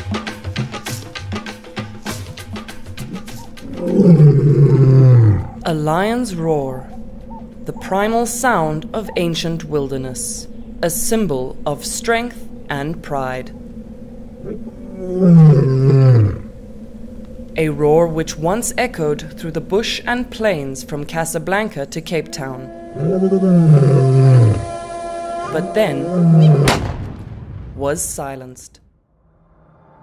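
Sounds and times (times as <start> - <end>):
faint drum music: 0.0 - 13.8
lion roaring: 3.0 - 5.7, 14.3 - 16.6, 23.0 - 24.8, 25.4 - 26.9.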